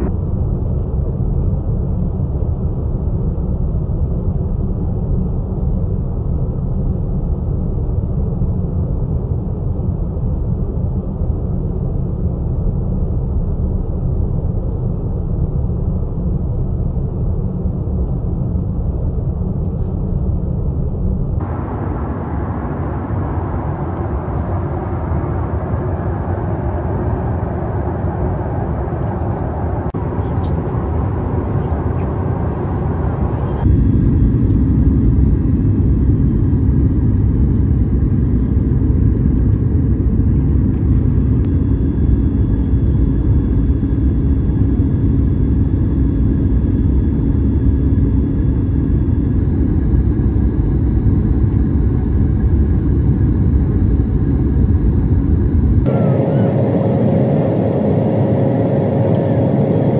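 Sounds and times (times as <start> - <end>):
jet airliner cabin noise: 0.0 - 4.1, 21.4 - 59.9.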